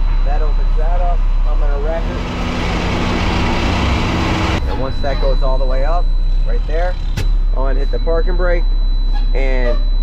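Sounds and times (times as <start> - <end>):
diesel truck engine running: 0.0 - 9.0.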